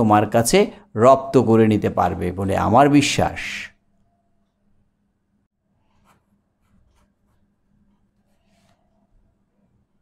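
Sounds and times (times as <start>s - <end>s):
pen scratching on paper: 5.8s - 9.0s.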